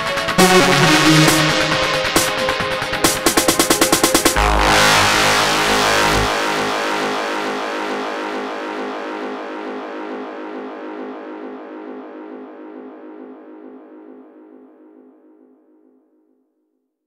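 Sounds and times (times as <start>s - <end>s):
synthesizer chord: 0.0s - 14.1s
deep bass note: 0.4s - 2.8s, 4.4s - 6.4s.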